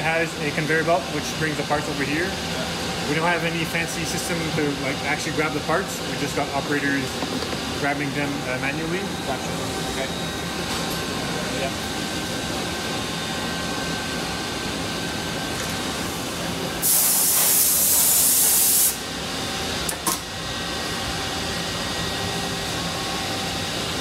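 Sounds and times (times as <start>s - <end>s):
machinery humming: 0.0s - 24.0s
compressed air hissing: 16.8s - 19.0s.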